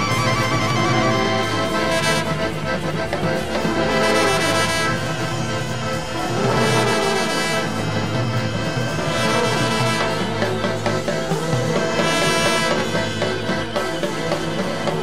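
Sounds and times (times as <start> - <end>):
brass band playing: 0.0 - 15.0
cymbal crashes: 1.8 - 15.0.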